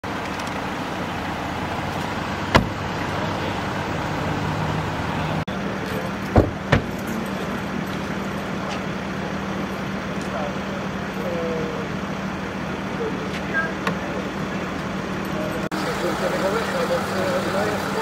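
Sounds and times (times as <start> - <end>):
vehicle engines idling: 0.0 - 18.0
short knocks: 2.5 - 2.8.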